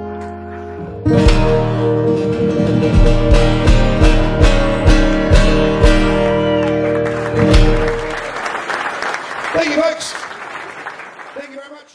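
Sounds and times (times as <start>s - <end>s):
acoustic guitar chord ringing: 0.0s - 8.4s
audience applause: 5.6s - 11.9s.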